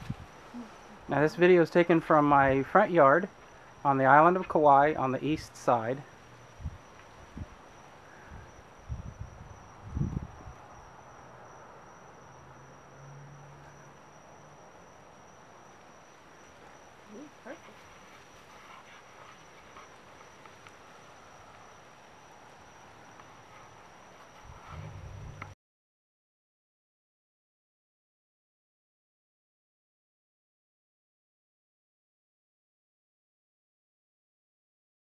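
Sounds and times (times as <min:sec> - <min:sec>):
insect trill: 0:00.0 - 0:25.6
low bumps: 0:24.3 - 0:25.6.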